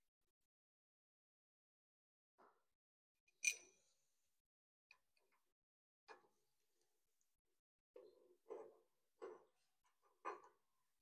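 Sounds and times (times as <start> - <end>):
sharp metal clink: 3.4 - 3.7.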